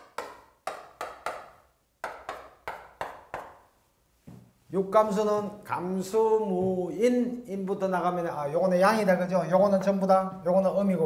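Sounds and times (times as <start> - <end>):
chalk tapping on blackboard: 0.0 - 3.6.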